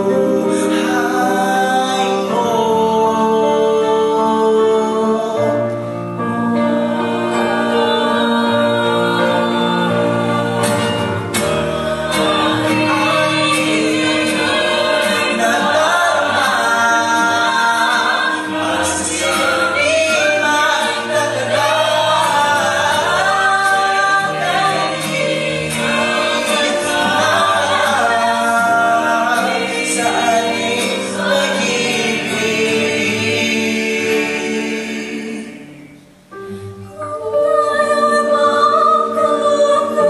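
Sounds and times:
vocal ensemble singing in harmony: 0:00.0 - 0:40.0.

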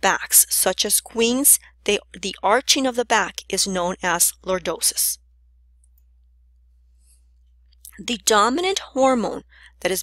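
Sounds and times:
person speaking: 0:00.0 - 0:05.2, 0:07.8 - 0:10.0
low steady hum: 0:00.0 - 0:10.0.

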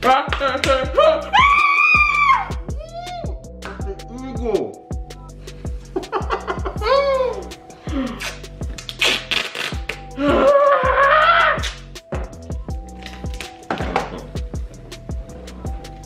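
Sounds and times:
music with steady beat: 0:00.0 - 0:16.0.

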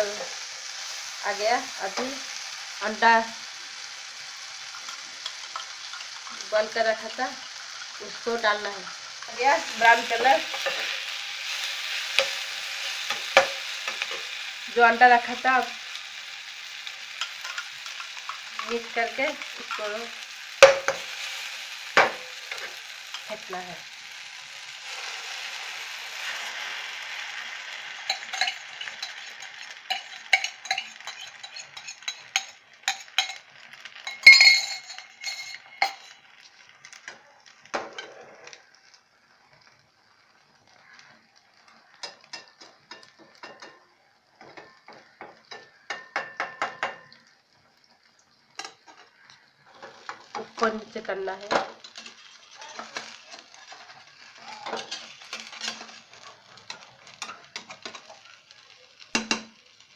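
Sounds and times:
vegetables sizzling in oil: 0:00.0 - 0:59.9
spatula tapping pan: 0:13.1 - 0:14.2, 0:20.6 - 0:21.1, 0:22.0 - 0:23.3, 0:28.1 - 0:36.1, 0:41.9 - 0:47.3, 0:59.1 - 0:59.6
metal spoon clinking on steel cup: 0:28.1 - 0:36.2.

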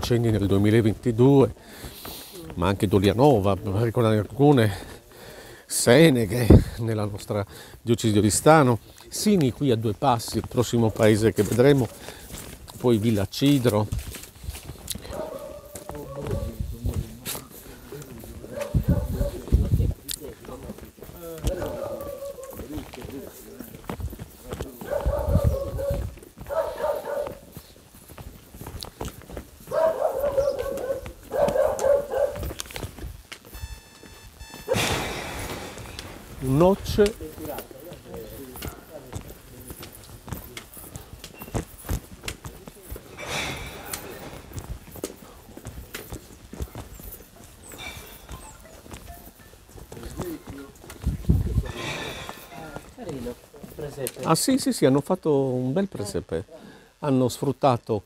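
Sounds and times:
footsteps on stone paving: 0:00.0 - 0:56.3
trekking poles tapping on stone: 0:20.1 - 0:33.6, 0:35.8 - 0:54.3.

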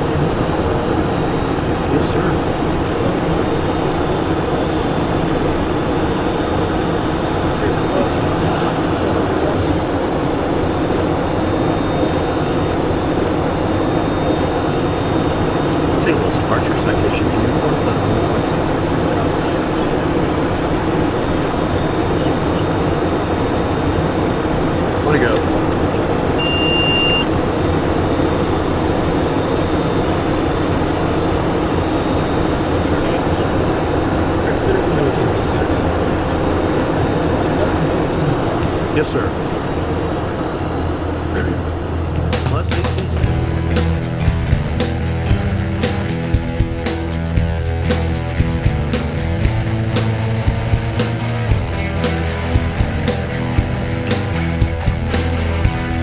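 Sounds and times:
faint high whine: 0:00.0 - 0:43.4
jet engine drone: 0:00.0 - 0:56.0
short high beep: 0:26.4 - 0:27.3.

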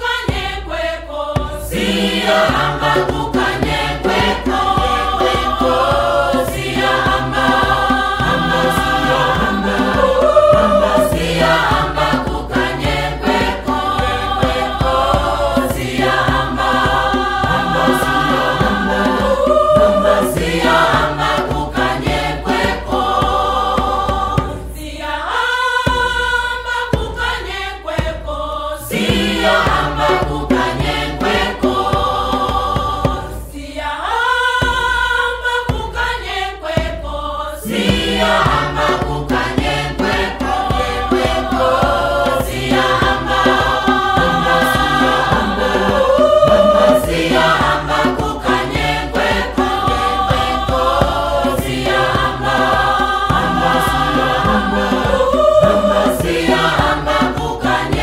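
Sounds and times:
choir singing sustained chords: 0:00.0 - 0:58.0.

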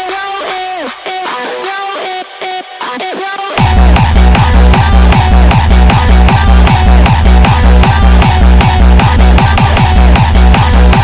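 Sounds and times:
bass and kick-drum beat: 0:03.6 - 0:11.0.

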